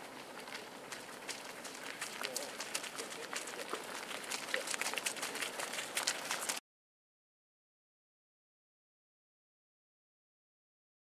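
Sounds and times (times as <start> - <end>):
footsteps jogging on hard dirt: 0.0 - 6.6.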